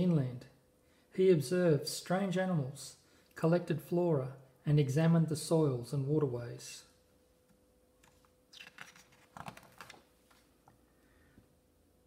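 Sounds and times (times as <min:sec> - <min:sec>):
page turning paper rustles: 0:08.0 - 0:10.5.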